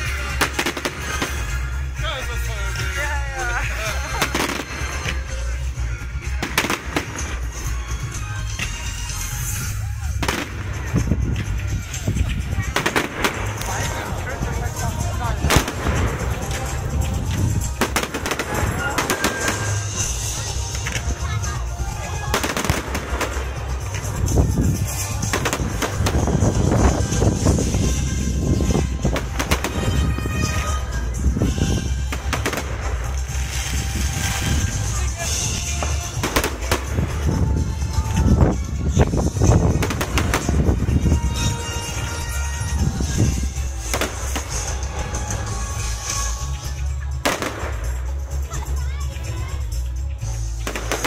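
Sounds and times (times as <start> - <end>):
fireworks bursting with sharp bangs: 0.0 - 51.0.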